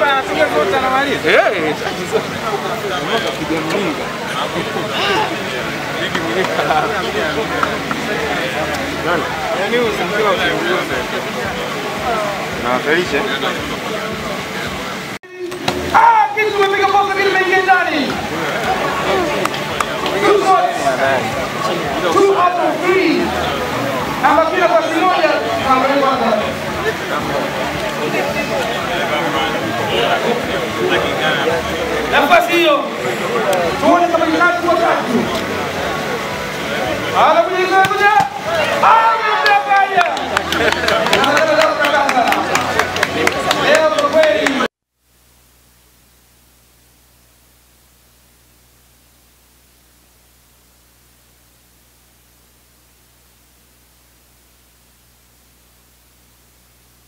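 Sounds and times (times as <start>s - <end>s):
outdoor crowd chatter: 0.0s - 44.7s
people calling out and talking: 0.0s - 44.7s.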